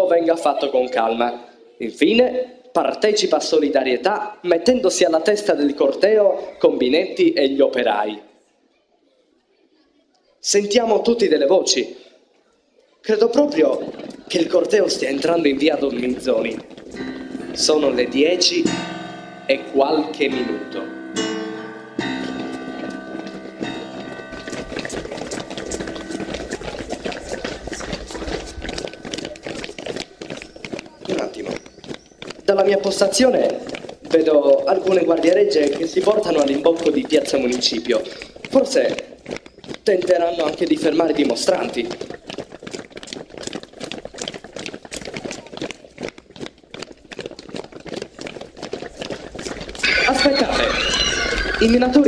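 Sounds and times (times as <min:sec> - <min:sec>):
footsteps marching on stone: 0:13.1 - 0:52.0.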